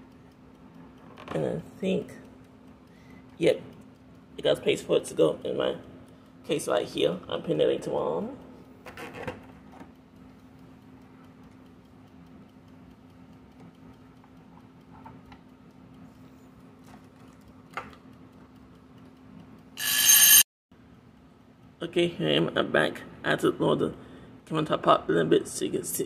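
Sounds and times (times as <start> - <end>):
steady low hum: 0.0 - 26.0
loud electronic ringing tone: 19.8 - 20.4.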